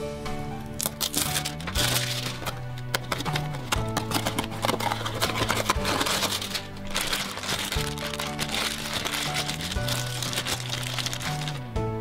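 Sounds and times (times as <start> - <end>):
background music with bass notes: 0.0 - 12.0
foil wrapper crinkling: 0.7 - 11.6.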